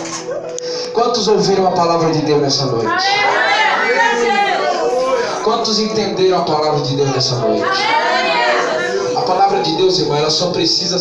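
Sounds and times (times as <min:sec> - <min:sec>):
congregation calling out together: 0:02.8 - 0:10.0.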